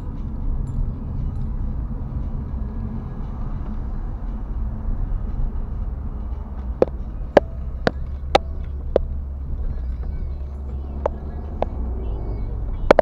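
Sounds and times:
car cabin engine rumble: 0:00.0 - 0:13.0
turn signal ticking: 0:00.0 - 0:13.0.

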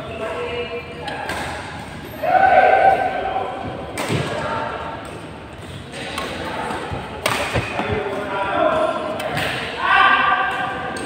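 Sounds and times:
rackets hitting shuttlecocks: 0:05.0 - 0:09.7.

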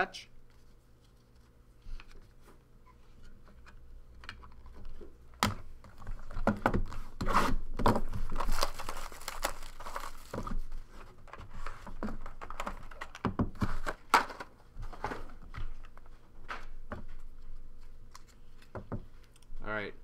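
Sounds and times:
wrapper crinkling and tearing: 0:07.8 - 0:10.7.

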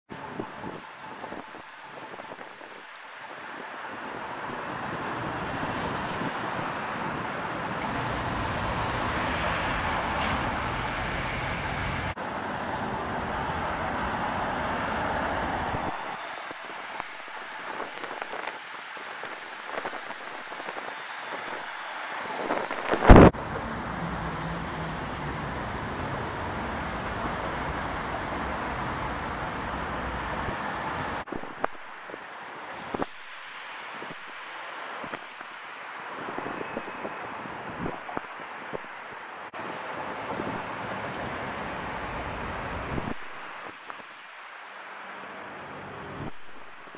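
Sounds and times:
road traffic: 0:00.1 - 0:46.9.

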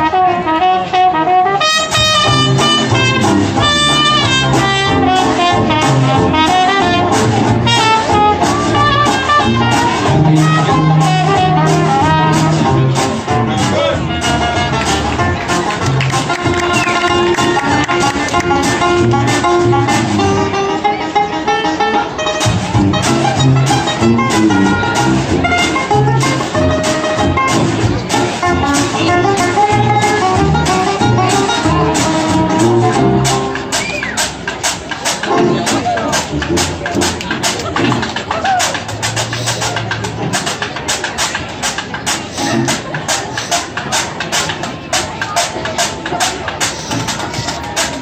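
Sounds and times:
clarinet and horn melody: 0:00.0 - 0:34.3, 0:35.2 - 0:37.5
jazz band playing: 0:00.0 - 0:48.0
washboard beat: 0:00.0 - 0:48.0
strummed banjo and guitars: 0:00.1 - 0:48.0
sousaphone bass line: 0:01.6 - 0:48.0.

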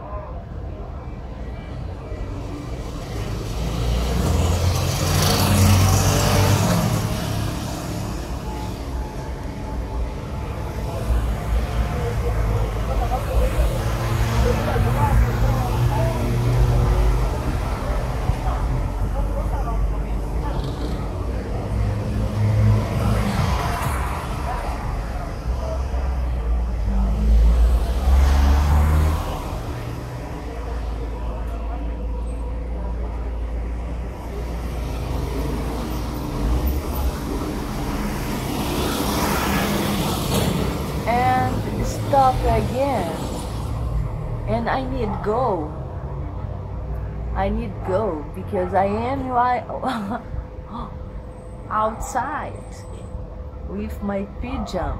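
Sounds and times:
indistinct voices: 0:00.0 - 0:54.9
vehicle engine rumbling: 0:00.0 - 0:54.9
woman's voice: 0:41.0 - 0:43.5, 0:44.4 - 0:45.8, 0:47.3 - 0:51.0, 0:51.7 - 0:52.9, 0:53.7 - 0:54.9.

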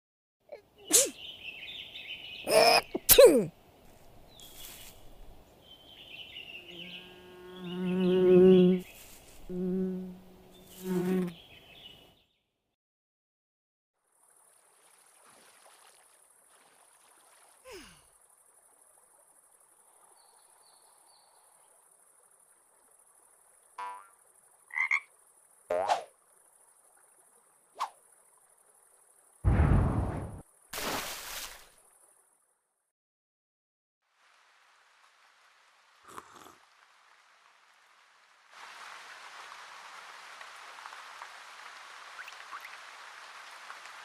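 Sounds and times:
flying insect buzzing: 0:06.5 - 0:11.4
frog croaking: 0:23.8 - 0:26.1.

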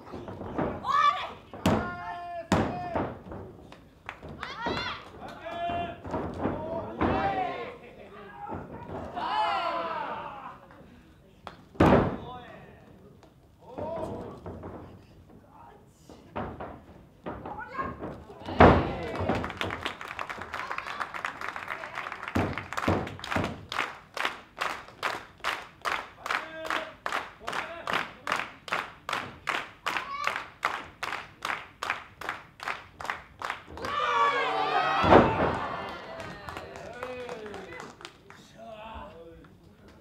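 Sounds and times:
man shouting: 0:01.8 - 0:03.0
audience clapping in unison: 0:03.7 - 0:05.6, 0:19.0 - 0:34.3, 0:35.5 - 0:38.6.

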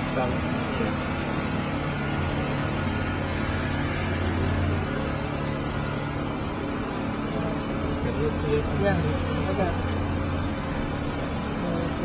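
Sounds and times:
motor rumble with deep hum: 0:00.0 - 0:12.0.

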